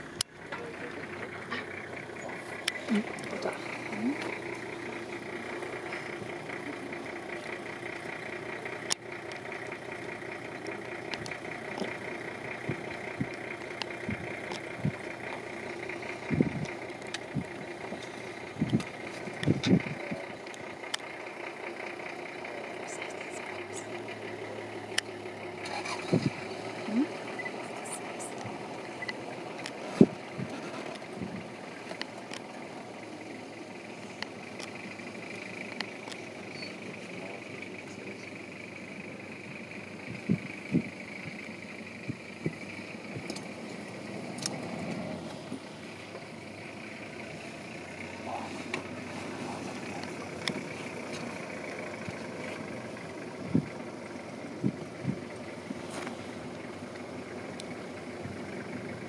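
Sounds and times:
vehicle engine idling: 0.0 - 59.0
low voices: 0.4 - 8.1, 22.0 - 31.4, 47.6 - 52.6.

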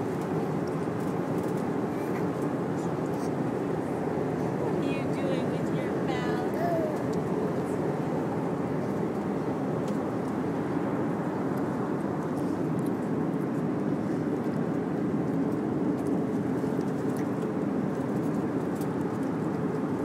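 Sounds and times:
airliner cabin noise: 0.0 - 20.0.

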